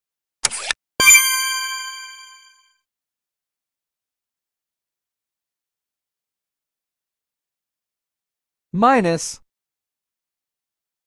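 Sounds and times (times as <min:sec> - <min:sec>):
bell-like ding chime: 0:01.0 - 0:02.6.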